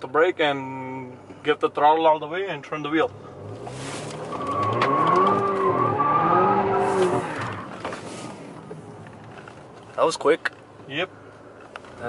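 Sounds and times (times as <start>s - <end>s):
car engine revving: 3.0s - 8.4s
tyres squealing: 3.6s - 7.7s.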